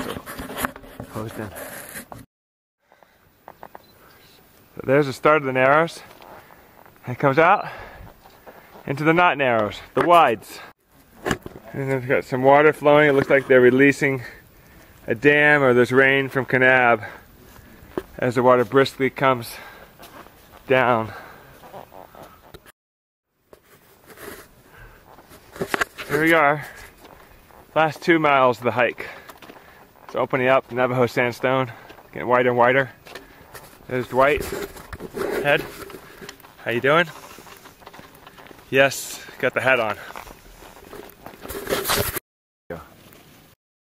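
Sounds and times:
rustle of hiking gear: 0:02.9 - 0:10.0, 0:17.0 - 0:22.6, 0:23.5 - 0:42.2
footsteps on sand: 0:19.4 - 0:22.6, 0:23.6 - 0:42.2
camera handling rustle: 0:25.2 - 0:26.9, 0:33.1 - 0:36.6, 0:40.1 - 0:42.2.

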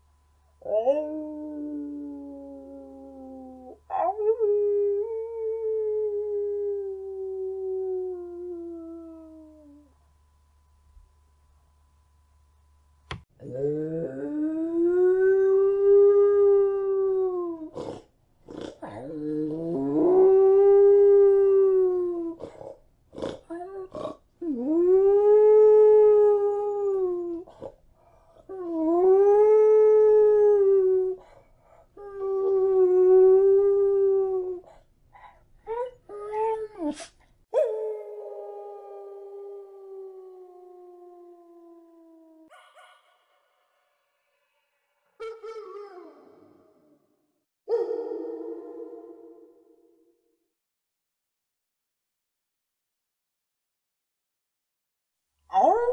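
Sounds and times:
dog howling: 0:45.2 - 0:47.0.

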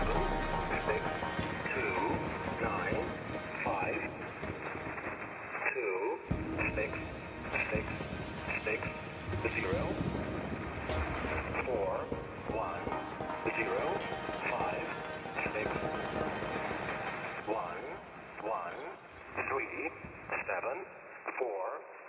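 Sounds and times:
muffled radio-like voice: 0:00.0 - 0:04.3, 0:05.5 - 0:10.1, 0:11.4 - 0:15.8, 0:17.4 - 0:22.0
live electronic synthesizer music: 0:00.0 - 0:05.5, 0:06.3 - 0:19.2
low drone: 0:00.0 - 0:05.6.

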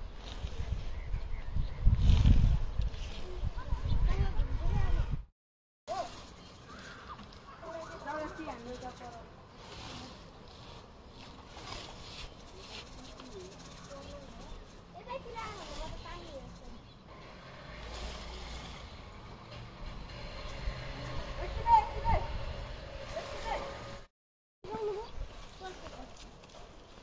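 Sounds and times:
outdoor background noise: 0:00.0 - 0:05.3, 0:05.9 - 0:27.0.

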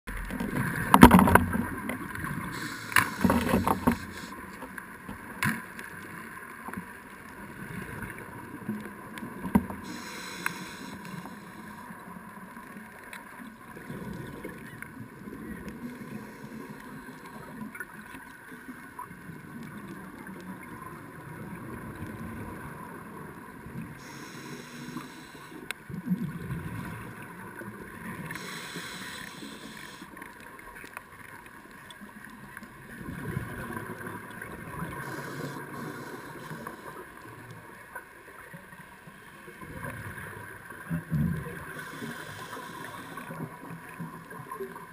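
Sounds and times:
muffled underwater noise: 0:00.1 - 0:44.9
short bursts of hiss: 0:02.5 - 0:04.3, 0:09.8 - 0:11.7, 0:24.0 - 0:25.6, 0:28.4 - 0:30.1, 0:41.8 - 0:43.3.

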